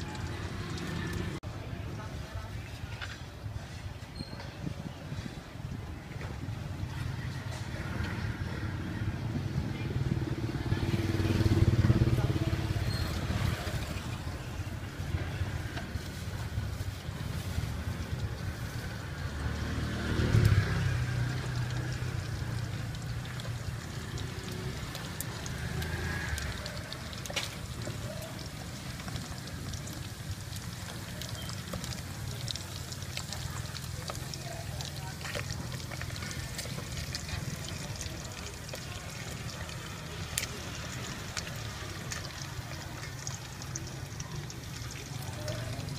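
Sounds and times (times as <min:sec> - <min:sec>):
motor vehicles passing: 0:00.0 - 0:01.7, 0:06.0 - 0:45.9
traffic rumble: 0:00.0 - 0:45.9.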